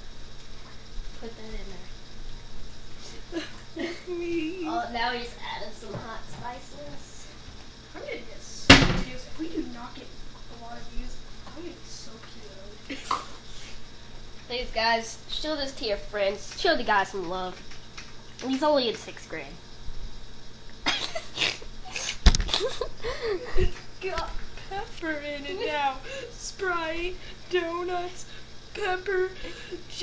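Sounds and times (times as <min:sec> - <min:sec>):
voices: 0:03.0 - 0:07.4, 0:14.5 - 0:17.7, 0:20.9 - 0:30.0
boy speaking: 0:03.8 - 0:07.3, 0:08.0 - 0:12.8, 0:18.4 - 0:19.6, 0:24.0 - 0:28.2
loud sharp knock: 0:08.7 - 0:09.1.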